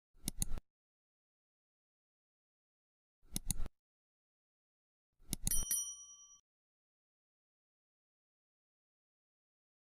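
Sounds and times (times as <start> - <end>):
mouse clicks: 0.2 - 0.6, 3.3 - 3.7, 5.3 - 5.6
notification bell ding: 5.5 - 6.4.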